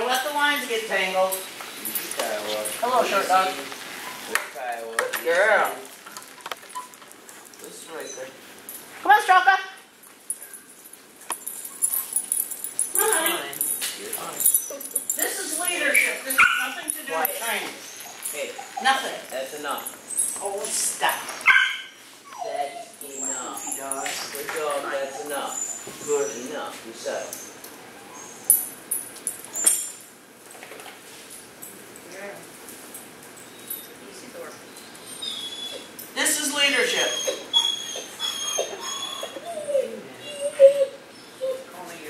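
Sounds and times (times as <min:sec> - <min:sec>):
metal dog tags jingling: 0:10.1 - 0:21.2, 0:23.0 - 0:24.9, 0:28.4 - 0:30.1
dogs yipping: 0:14.5 - 0:28.8, 0:29.4 - 0:30.0, 0:34.7 - 0:41.8.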